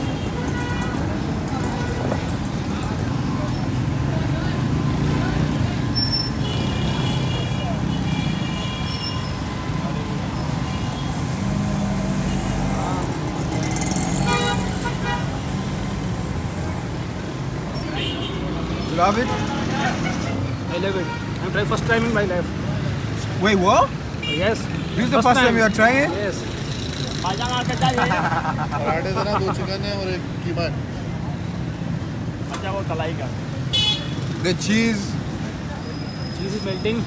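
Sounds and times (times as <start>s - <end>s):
vehicle horns tooting: 0.0s - 2.3s, 6.0s - 9.8s, 14.0s - 15.5s, 17.8s - 18.6s, 33.7s - 34.3s
traffic engines rumbling: 0.0s - 37.0s.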